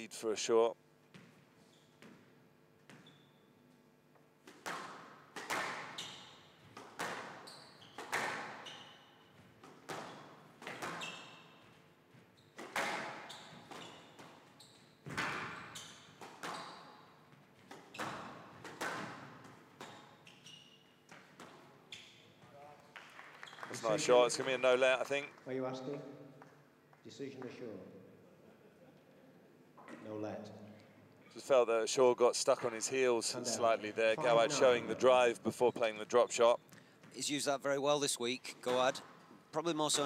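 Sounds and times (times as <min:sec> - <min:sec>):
shoe squeaks on court floor: 0:01.6 - 0:02.2, 0:02.8 - 0:03.6, 0:05.7 - 0:18.6, 0:19.8 - 0:22.6
squash ball cracking off rackets: 0:04.4 - 0:06.0, 0:06.6 - 0:08.6, 0:17.6 - 0:20.1.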